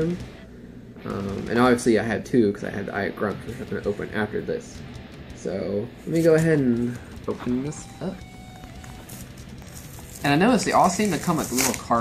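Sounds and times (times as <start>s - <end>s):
quiet music: 0.0s - 12.0s.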